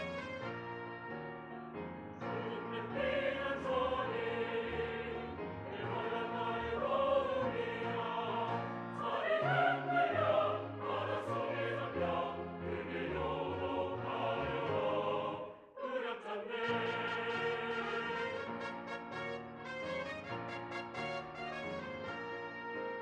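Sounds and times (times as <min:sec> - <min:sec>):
keyboard accompaniment: 0:00.0 - 0:15.5, 0:16.6 - 0:23.0
church choir singing: 0:00.0 - 0:23.0.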